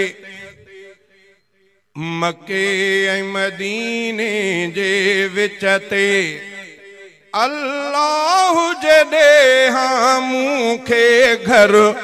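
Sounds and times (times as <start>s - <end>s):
man singing devotional song: 0.0s - 12.0s.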